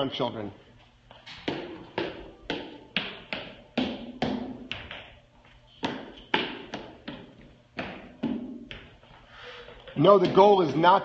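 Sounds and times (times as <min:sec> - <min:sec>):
child's running footsteps on rubber: 0:00.8 - 0:09.2.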